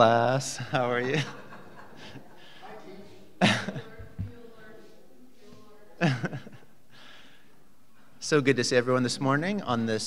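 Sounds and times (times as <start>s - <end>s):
faint murmur of voices: 0.0s - 8.4s.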